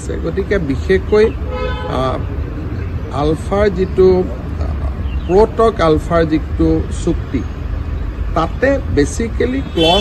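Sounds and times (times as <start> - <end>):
man speaking: 0.0 - 2.4, 3.1 - 7.5, 8.4 - 10.0
low rumble of traffic: 0.0 - 10.0
car horn toot: 1.5 - 2.1, 9.6 - 10.0.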